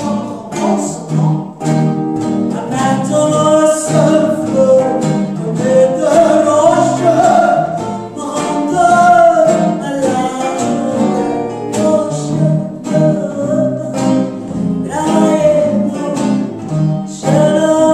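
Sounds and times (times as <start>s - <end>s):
electric guitar: 0.0s - 17.9s
strummed acoustic guitar: 0.0s - 17.9s.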